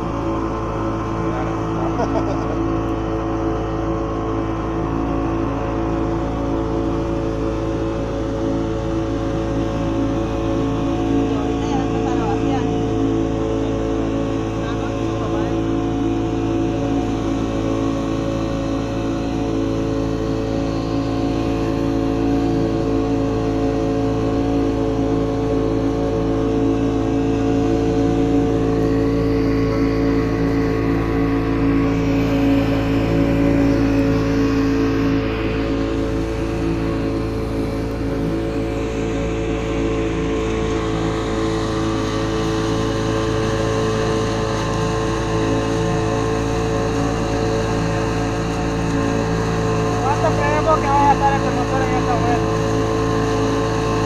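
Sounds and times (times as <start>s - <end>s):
churning water: 0.0s - 54.0s
outboard motor running: 0.0s - 54.0s.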